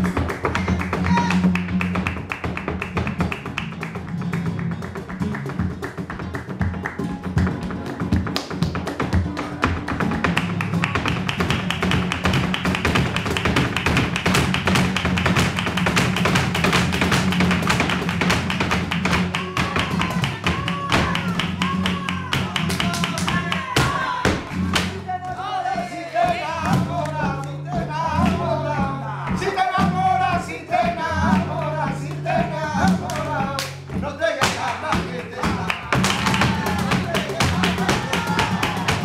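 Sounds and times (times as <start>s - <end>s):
hand clapping: 0.0s - 28.4s, 30.9s - 39.0s
flamenco guitar: 0.0s - 39.0s
heeled footwork on stage: 0.0s - 39.0s.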